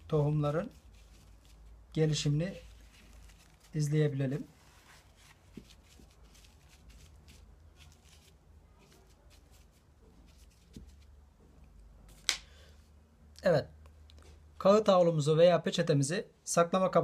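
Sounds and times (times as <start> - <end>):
paper towel rustling: 0.0 - 11.2.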